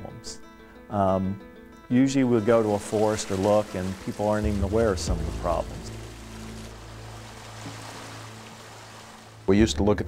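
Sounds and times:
soft background music: 0:00.0 - 0:10.0
flowing stream water: 0:02.3 - 0:09.5.

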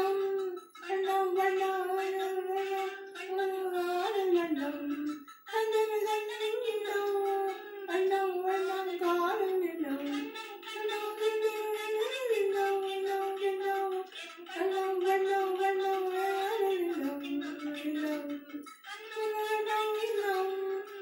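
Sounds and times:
woman singing unaccompanied: 0:00.0 - 0:21.0.

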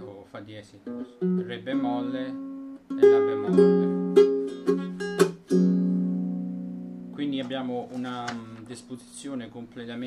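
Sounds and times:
ukulele chords strummed: 0:00.6 - 0:09.0.

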